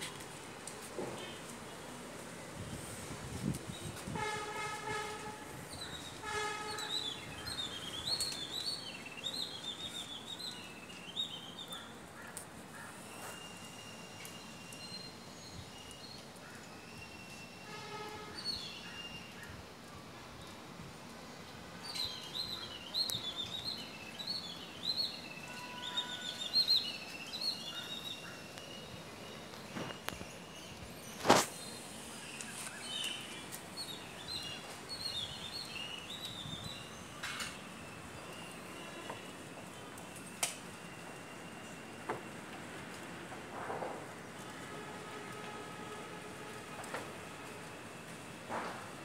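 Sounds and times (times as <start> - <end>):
faint steady hiss: 0.0 - 49.0
vehicle horn honking: 4.1 - 5.5, 6.2 - 7.3, 17.7 - 18.4, 25.5 - 26.3
songbird chirping: 5.7 - 12.0, 21.9 - 40.0.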